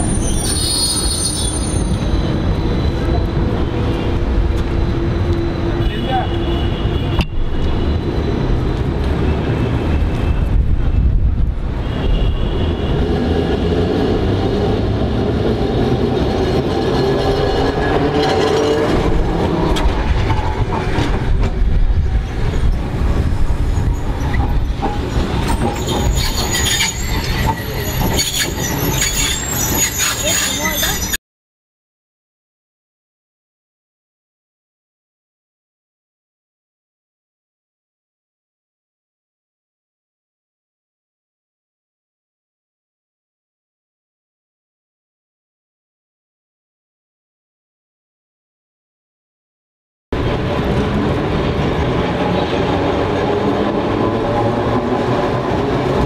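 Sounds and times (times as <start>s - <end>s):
wheel squeal: 0.0s - 3.2s, 22.2s - 31.2s
tram rumbling past: 0.0s - 5.9s, 6.7s - 31.2s, 50.2s - 56.0s.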